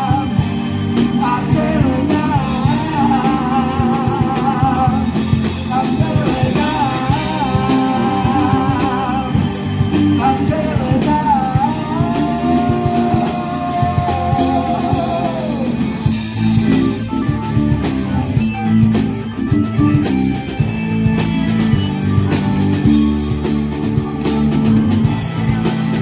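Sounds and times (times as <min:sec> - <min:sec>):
man singing lead vocals: 0:00.0 - 0:16.5
bass guitar: 0:00.0 - 0:26.0
drum kit: 0:00.0 - 0:26.0
electric guitars: 0:00.0 - 0:26.0
keyboard: 0:00.0 - 0:26.0.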